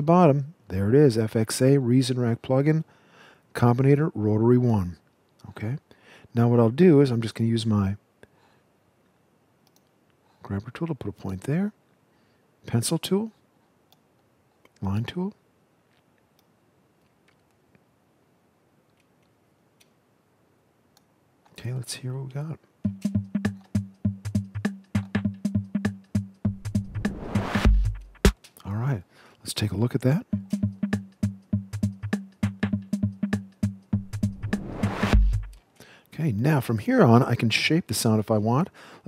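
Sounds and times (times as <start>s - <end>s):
faint computer mouse clicks: 9.6s - 10.0s
drum machine beat: 22.9s - 28.5s, 30.2s - 35.6s
rising synthesized noise whoosh: 26.8s - 27.8s.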